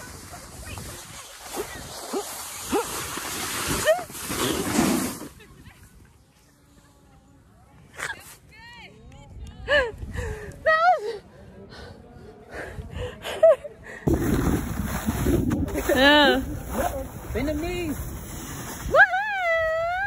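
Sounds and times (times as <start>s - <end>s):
women laughing and whooping: 9.6s - 11.2s, 18.8s - 20.0s.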